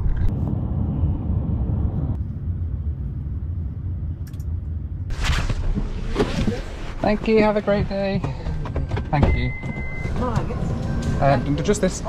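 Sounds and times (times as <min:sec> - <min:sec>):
road and engine rumble in car: 0:05.7 - 0:12.0.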